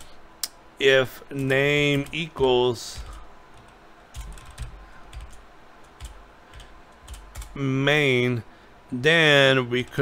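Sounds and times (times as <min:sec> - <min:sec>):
typing on keyboard: 0:02.9 - 0:07.6.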